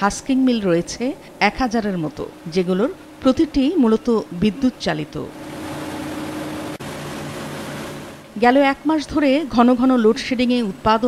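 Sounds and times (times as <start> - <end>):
rice-milling machine humming: 5.3 - 8.4.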